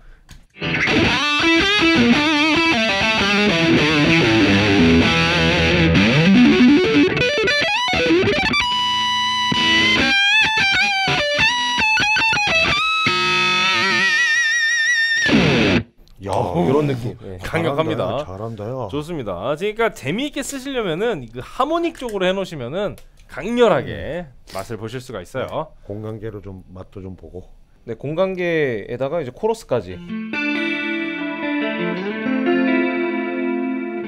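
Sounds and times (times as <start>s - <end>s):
distorted electric guitar: 0.6s - 16.0s, 30.0s - 34.0s.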